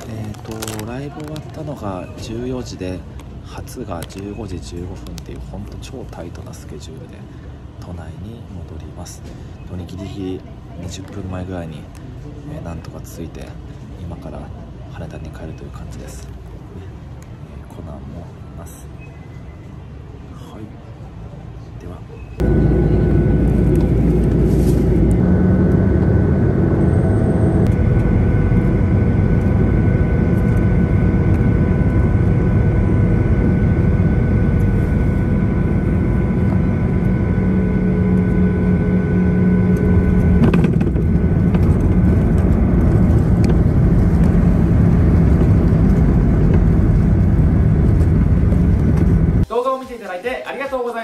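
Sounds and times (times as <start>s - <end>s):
jet engine cabin rush: 22.4s - 49.5s.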